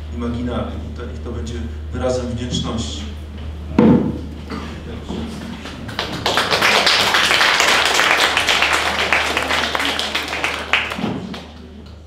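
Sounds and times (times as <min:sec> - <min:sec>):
audience applauding: 0:05.4 - 0:12.0.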